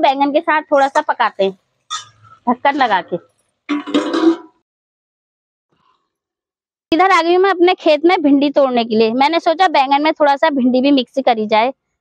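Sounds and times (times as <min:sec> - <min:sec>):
woman's voice: 0:00.0 - 0:01.6, 0:02.4 - 0:03.2, 0:06.9 - 0:11.7.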